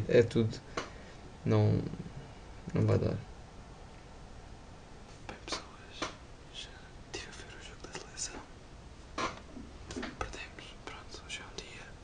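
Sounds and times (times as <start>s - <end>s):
man whispering: 5.2s - 8.5s, 10.1s - 12.0s.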